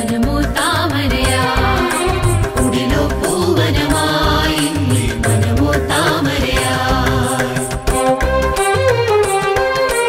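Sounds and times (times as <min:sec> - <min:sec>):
person singing: 0:00.0 - 0:07.9.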